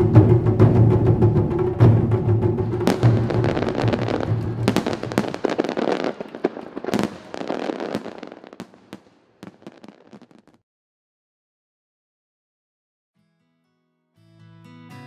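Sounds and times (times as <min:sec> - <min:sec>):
fireworks bangs: 0:02.0 - 0:10.6
fireworks bursting and crackling: 0:02.6 - 0:10.6.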